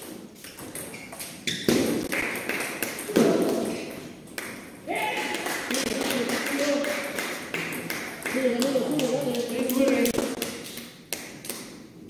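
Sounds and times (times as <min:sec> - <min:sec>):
table tennis ball hits: 0:00.0 - 0:11.8.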